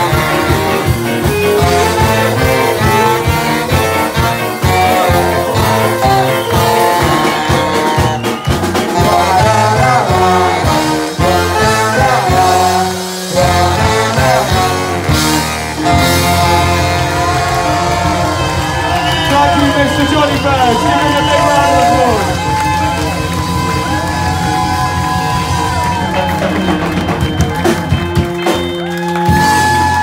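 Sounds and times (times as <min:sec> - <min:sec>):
live ska band playing: 0:00.0 - 0:30.0
saxophones: 0:00.0 - 0:30.0.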